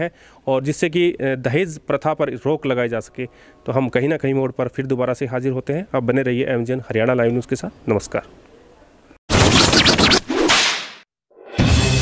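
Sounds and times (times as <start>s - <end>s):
loud swish: 9.3s - 11.0s.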